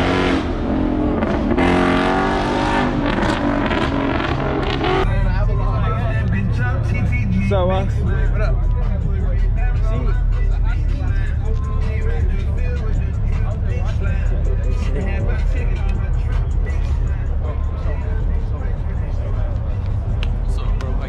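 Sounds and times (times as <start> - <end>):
car engines idling: 0.0 - 21.0
people talking: 5.0 - 21.0
music: 5.1 - 21.0.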